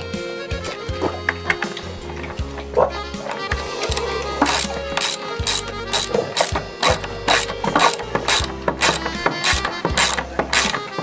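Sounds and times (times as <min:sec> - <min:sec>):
ratchet wrench clicking: 0:03.8 - 0:11.0.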